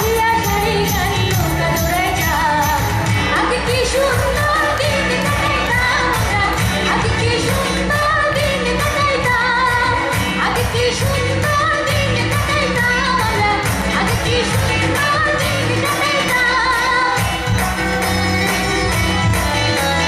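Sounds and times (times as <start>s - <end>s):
live pop band music: 0.0s - 20.0s
woman singing into a microphone: 0.0s - 20.0s.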